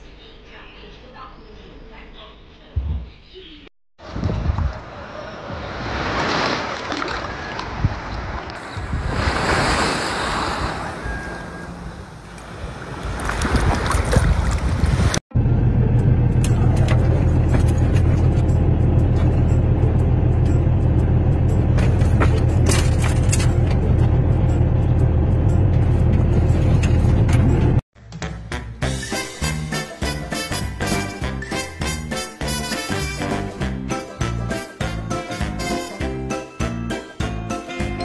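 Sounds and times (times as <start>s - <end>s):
sea water lapping: 4.7s - 15.2s.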